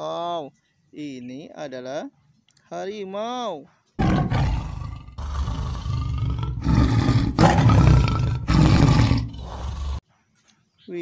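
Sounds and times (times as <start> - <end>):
tiger roaring: 4.0 - 10.0.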